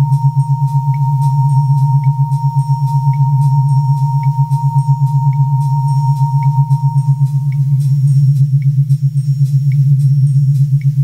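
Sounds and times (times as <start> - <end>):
high sine-like tone: 0.0 - 11.0
pulsing low synth drone: 0.0 - 11.0.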